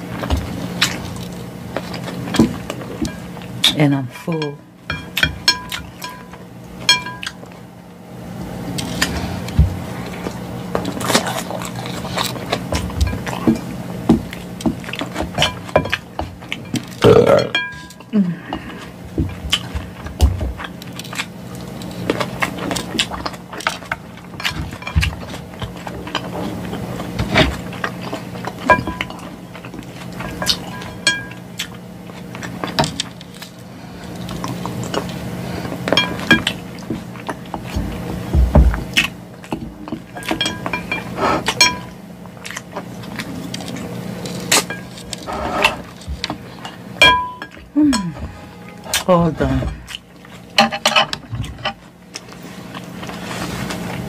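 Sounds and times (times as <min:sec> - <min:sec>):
chewing salad: 0:00.0 - 0:07.7, 0:08.3 - 0:54.0
steady low hum: 0:00.0 - 0:54.0
fork scraping glass bowl: 0:44.7 - 0:45.8.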